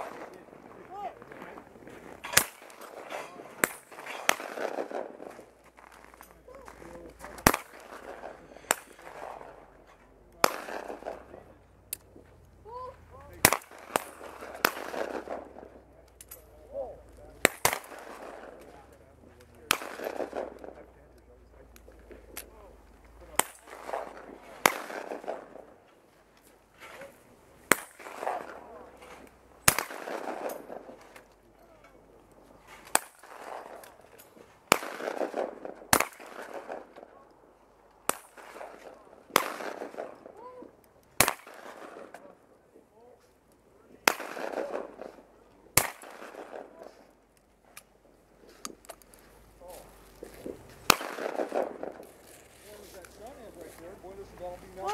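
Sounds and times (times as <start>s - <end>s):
shotgun shots: 0.0s - 11.7s, 13.2s - 21.0s, 21.6s - 25.9s, 26.8s - 31.3s, 32.7s - 37.3s, 38.0s - 40.4s, 41.2s - 42.4s, 44.0s - 47.1s, 49.7s - 54.9s.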